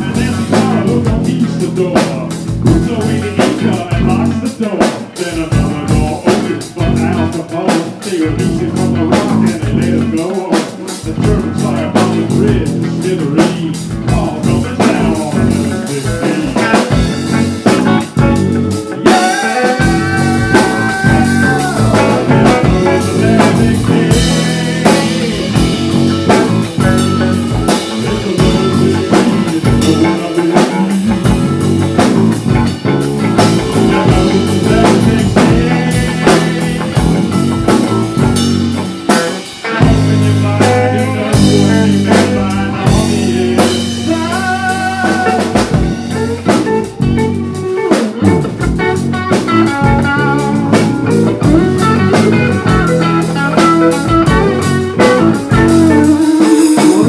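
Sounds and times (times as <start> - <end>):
bass guitar: 0.0 - 57.0
drum kit hits and cymbals: 0.0 - 57.0
electric guitars: 0.0 - 57.0.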